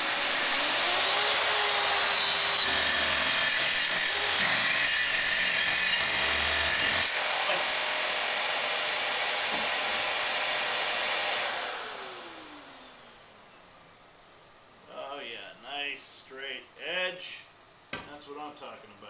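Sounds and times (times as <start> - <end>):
dust extractor running: 0.0 - 13.2
track saw cutting wood: 0.0 - 13.2.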